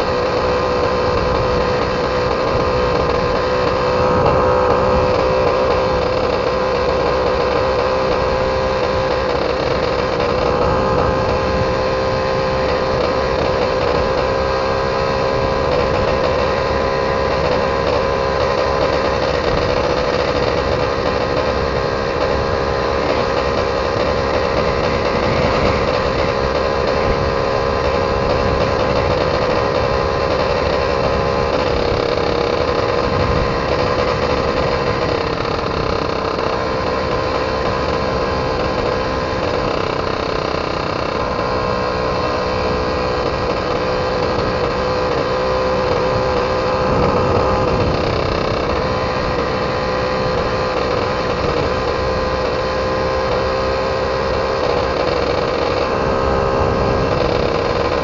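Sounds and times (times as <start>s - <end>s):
moped engine running: 0.0s - 58.0s
wind rumble on microphone: 8.1s - 58.0s.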